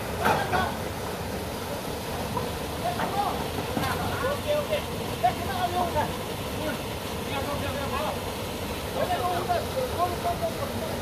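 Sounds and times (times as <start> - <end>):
men talking at a distance: 2.7 - 11.0.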